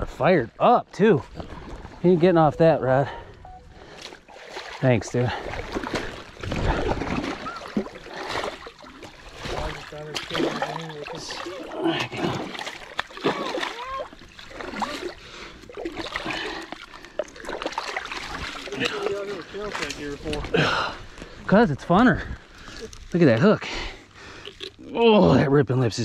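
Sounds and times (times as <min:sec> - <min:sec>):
water sloshing around boots: 0:01.2 - 0:21.5
fish splashing in water: 0:05.4 - 0:20.5.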